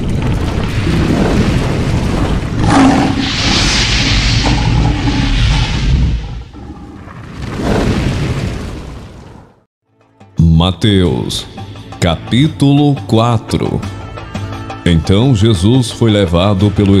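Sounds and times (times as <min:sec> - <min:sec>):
deep rumbling boom: 0:00.0 - 0:09.5
hissing rush: 0:00.6 - 0:08.0
sharp hit: 0:02.6 - 0:06.5.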